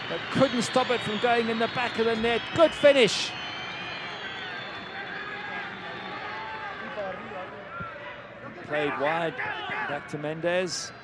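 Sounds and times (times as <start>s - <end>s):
stadium crowd shouting: 0.0s - 11.0s.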